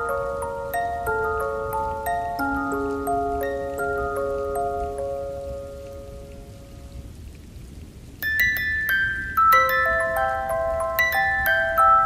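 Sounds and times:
music box melody: 0.0s - 6.9s, 8.2s - 12.0s
steady rain: 0.0s - 12.0s.

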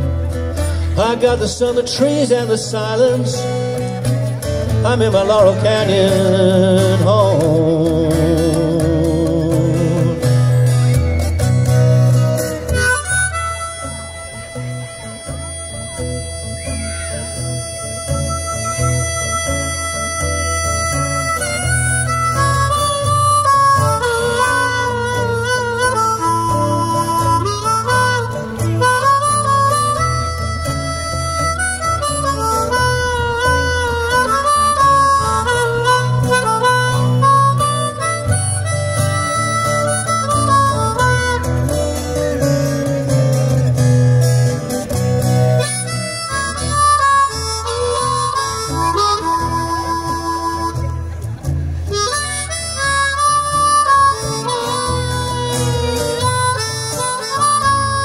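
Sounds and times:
harmonica solo with bending notes: 0.0s - 58.0s
strummed acoustic guitar: 0.0s - 58.0s.

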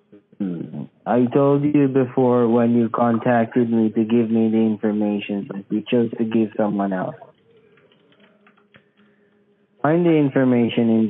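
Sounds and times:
low steady hum: 0.0s - 11.0s
faint irregular clicking: 7.3s - 9.6s.

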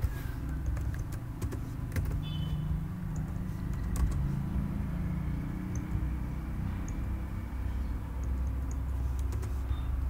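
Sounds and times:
computer keyboard keystrokes: 0.0s - 2.3s, 3.1s - 4.3s, 8.2s - 10.0s.

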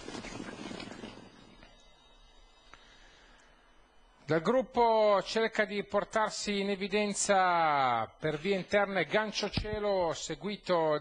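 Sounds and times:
horses galloping on turf: 0.0s - 1.3s.

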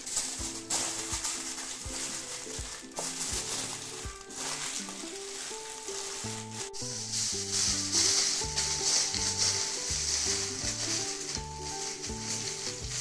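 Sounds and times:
aluminium foil crinkling: 0.0s - 13.0s
gentle background music: 0.0s - 13.0s.

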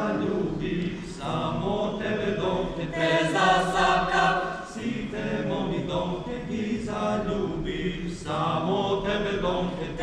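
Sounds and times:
mixed choir singing a cappella: 0.0s - 10.0s.

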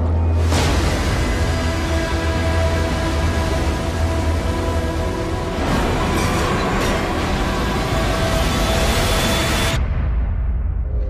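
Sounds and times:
giant wave crashing roar: 0.4s - 6.3s.

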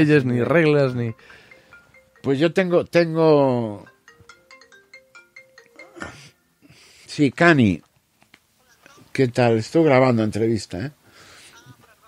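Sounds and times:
phone ringtone melody: 0.8s - 6.6s.

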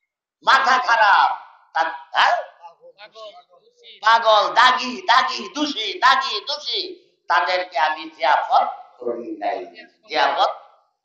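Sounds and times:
man shouting over loudspeaker: 0.5s - 10.5s.

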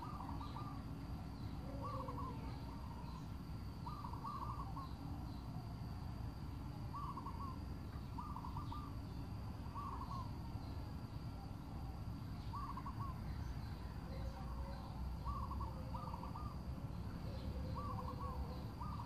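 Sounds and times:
bird calling: 0.0s - 5.6s, 6.9s - 10.8s, 11.8s - 19.0s
low background noise: 0.0s - 19.0s.

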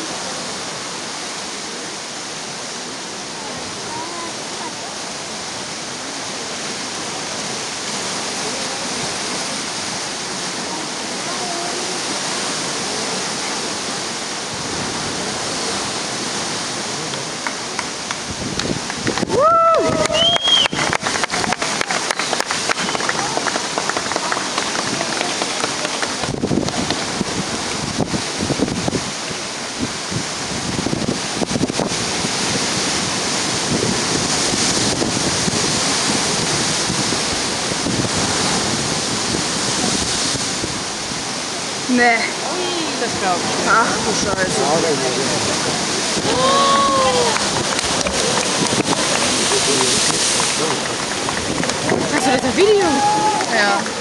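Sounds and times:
faint voices: 0.0s - 18.1s, 20.8s - 27.7s, 41.2s - 54.0s
ocean surf on rocks: 0.0s - 54.0s
wind crackling on microphone: 0.0s - 54.0s.

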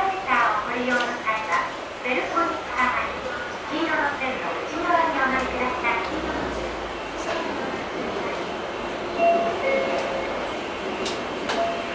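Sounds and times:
train running rumble: 0.0s - 11.9s.

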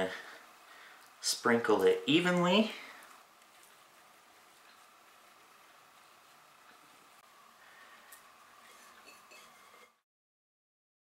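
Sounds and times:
thin steady hum: 0.0s - 10.0s.

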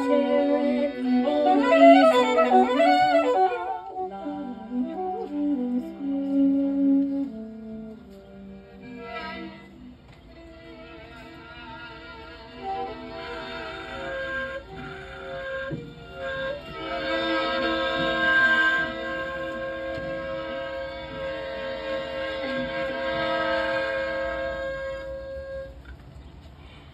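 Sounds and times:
saxophone playing: 0.0s - 26.0s
violin playing: 0.0s - 26.0s.

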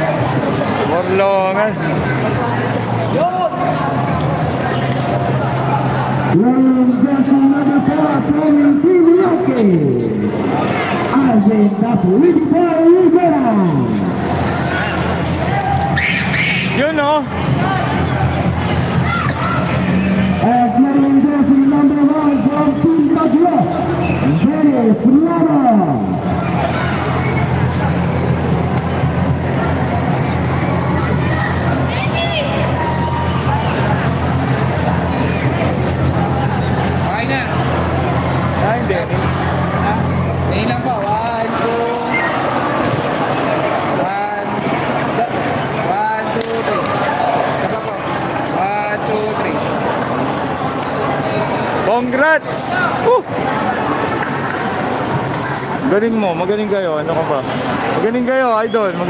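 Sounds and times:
crowd talking: 0.0s - 59.0s
voices calling out: 0.0s - 59.0s
loud wavering voice: 18.9s - 21.1s.

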